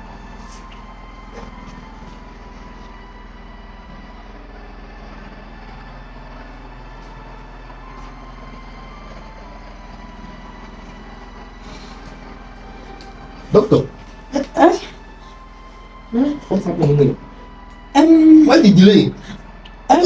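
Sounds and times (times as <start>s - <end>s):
background hum and hiss: 0.0s - 20.0s
faint sustained tones: 0.0s - 20.0s.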